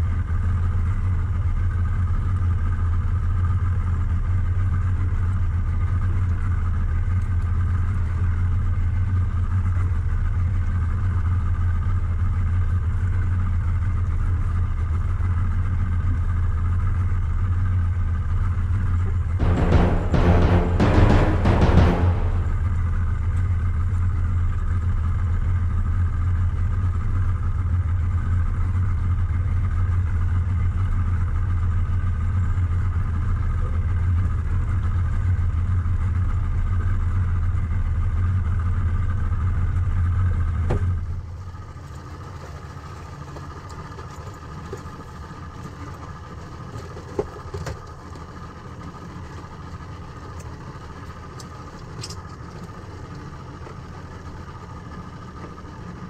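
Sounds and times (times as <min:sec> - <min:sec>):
outboard motor idling: 0:26.5 - 0:56.0.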